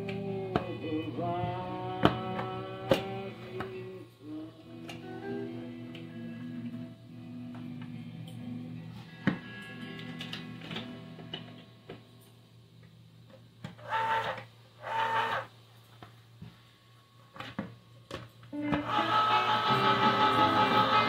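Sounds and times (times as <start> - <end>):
plucked guitar background music: 0.0 - 12.9, 18.5 - 21.0
electric can opener motor whirring: 13.8 - 15.5, 18.7 - 21.0.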